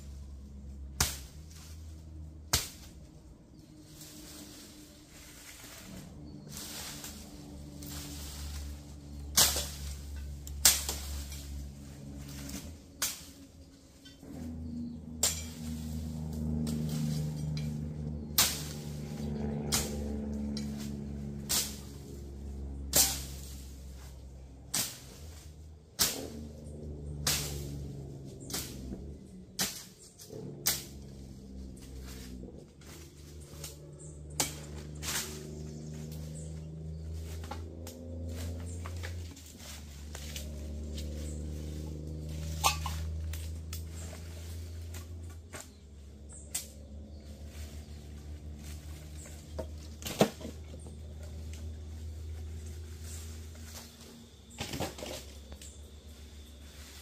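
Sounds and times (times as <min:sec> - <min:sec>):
machete chopping brush: 0:00.8 - 0:01.8, 0:02.4 - 0:03.1, 0:03.9 - 0:13.6, 0:14.3 - 0:51.5.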